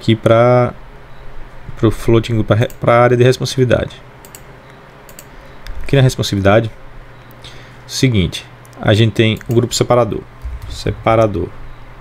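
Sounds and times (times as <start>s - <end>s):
computer mouse and keyboard clicks: 4.2s - 6.0s, 8.6s - 9.7s.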